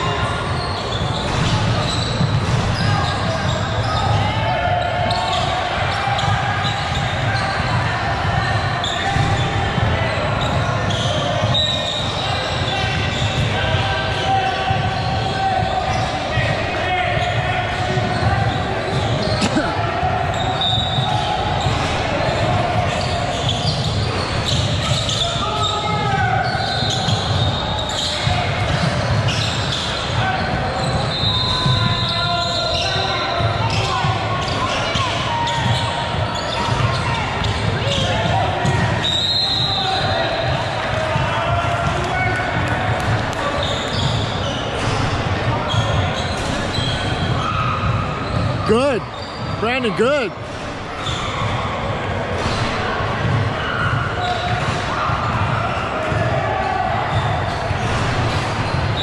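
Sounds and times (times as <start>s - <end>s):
echoing voices: 48.1s - 50.4s.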